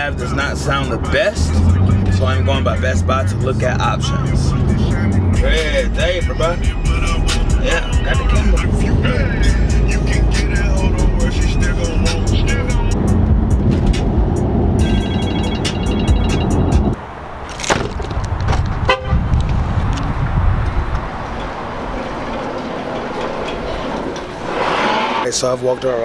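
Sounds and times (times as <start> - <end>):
car driving rumble inside cabin: 0.0 - 17.0
car horn chirp: 14.8 - 17.0, 18.8 - 19.3.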